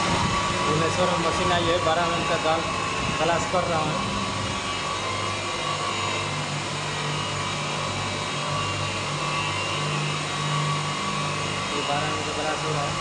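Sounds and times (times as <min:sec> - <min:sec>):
electric motors humming: 0:00.0 - 0:13.0.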